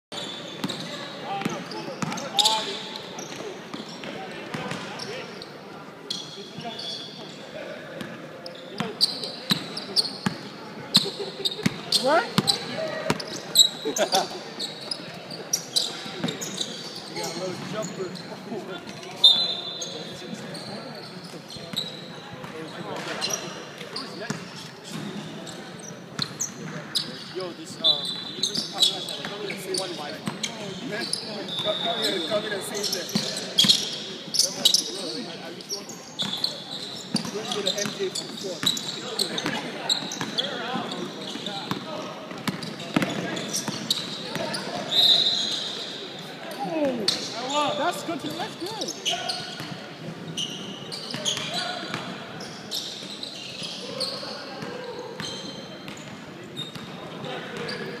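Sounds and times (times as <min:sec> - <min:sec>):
sneakers squeaking: 0:00.1 - 0:58.0
players' voices echoing: 0:00.4 - 0:58.0.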